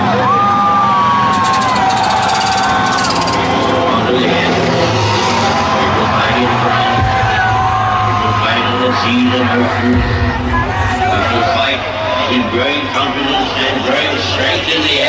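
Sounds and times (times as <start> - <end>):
crowd noise: 0.0 - 15.0
low drone: 0.3 - 8.2.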